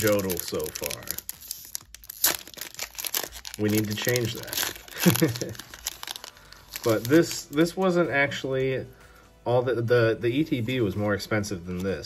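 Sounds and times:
foil wrapper ripping: 0.0s - 7.9s
foil wrapper crinkling: 0.0s - 8.0s.

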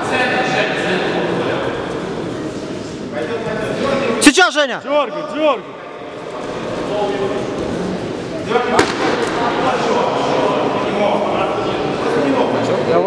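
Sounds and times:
sharp thump: 8.8s - 9.4s.

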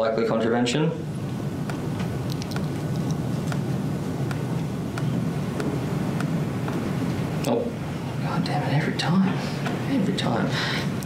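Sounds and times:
low room hum: 0.0s - 11.0s
faint ticking: 1.2s - 7.6s.

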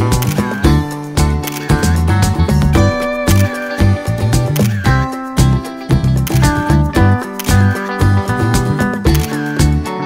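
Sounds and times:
background music with steady beat: 0.0s - 10.0s
sharp percussive clicks: 6.1s - 6.7s.

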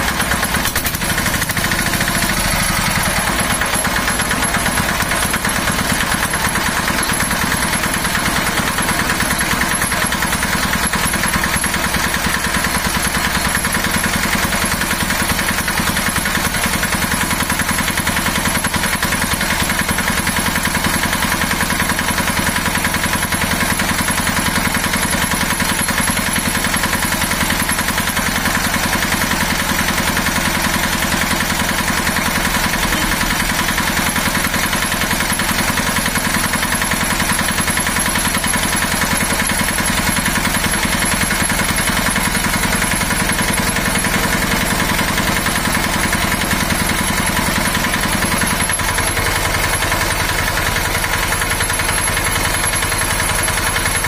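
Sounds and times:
diesel generator engine running: 0.0s - 54.0s.

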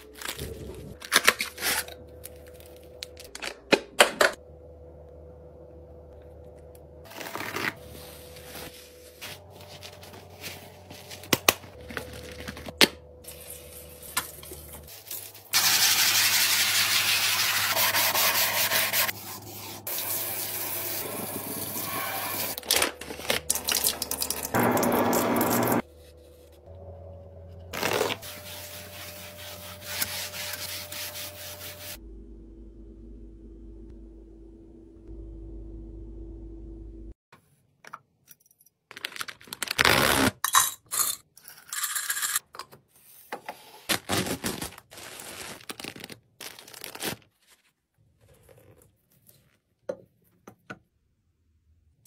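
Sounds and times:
packaging rustling: 7.1s - 12.8s, 22.6s - 24.0s, 38.9s - 40.3s, 43.9s - 47.8s.

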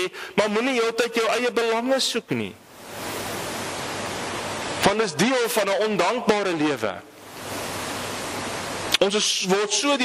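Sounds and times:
man speaking: 0.0s - 2.6s, 4.8s - 7.1s, 9.0s - 10.0s
steady static hiss: 0.0s - 10.0s.

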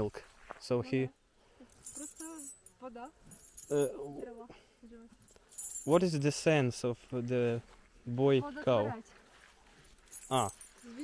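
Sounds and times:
chain clinking and jingling: 1.6s - 4.4s, 5.1s - 6.4s, 9.8s - 11.0s
person speaking: 3.6s - 4.5s, 10.2s - 11.0s.

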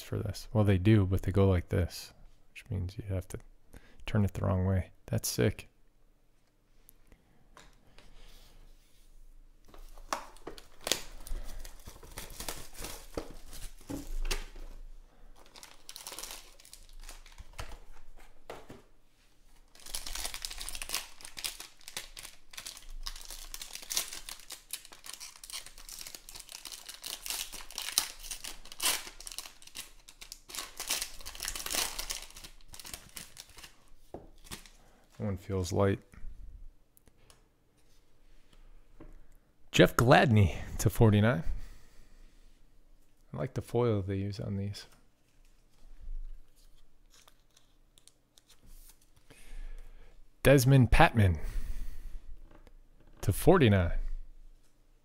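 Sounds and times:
foil wrapper crinkling and tearing: 9.9s - 14.2s, 15.4s - 18.0s, 19.6s - 34.8s, 47.0s - 49.2s.

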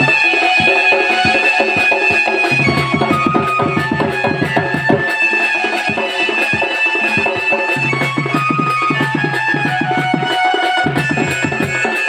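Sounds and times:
nasal reed pipe melody: 0.0s - 12.0s
barrel drum strokes: 2.4s - 5.0s.

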